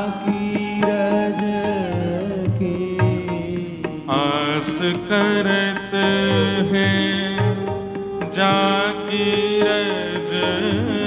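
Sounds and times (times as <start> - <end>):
man singing a devotional chant: 0.0 - 11.0.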